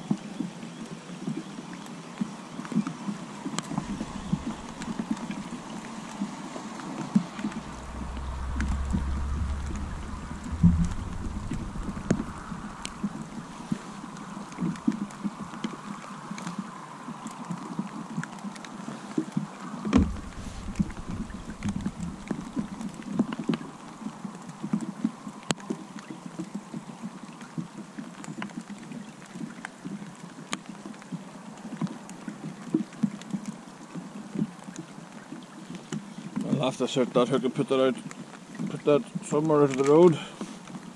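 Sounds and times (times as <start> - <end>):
rain falling on water and hood: 0.0 - 40.9
wind buffeting microphone: 3.6 - 16.2, 19.8 - 24.2.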